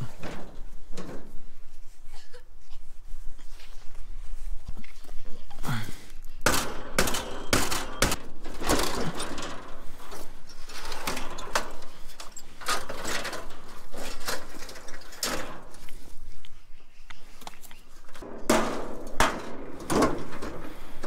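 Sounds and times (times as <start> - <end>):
loud metal bangs: 6.4 - 14.6, 18.2 - 21.0
metal parts clanking and rattling: 6.4 - 15.9, 18.1 - 21.0.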